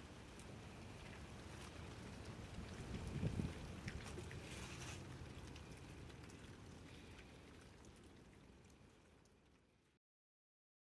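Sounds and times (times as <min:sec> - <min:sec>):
faint hiss with crackle: 0:00.0 - 0:10.0.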